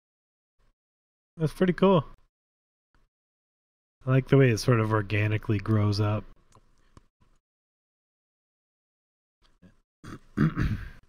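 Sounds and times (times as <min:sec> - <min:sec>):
man clearing his throat: 0:10.0 - 0:11.0.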